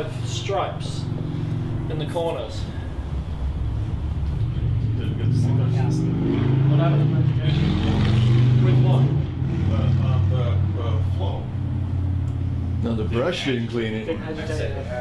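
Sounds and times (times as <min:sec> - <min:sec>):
vehicle engine rumbling: 0:00.0 - 0:15.0.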